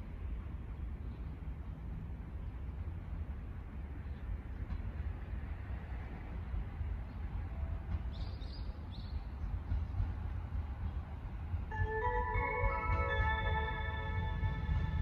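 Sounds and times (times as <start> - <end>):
distant electric train rumble: 0.0 - 15.0.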